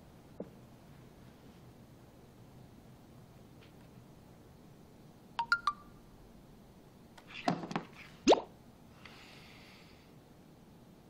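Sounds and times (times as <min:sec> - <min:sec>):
quick pitched plinks: 0:05.4 - 0:05.9.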